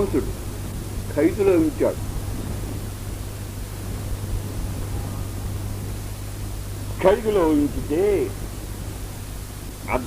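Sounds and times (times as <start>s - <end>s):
man speaking: 0.0s - 0.4s, 1.1s - 2.0s, 7.0s - 8.4s
low hum and hiss: 0.0s - 10.0s.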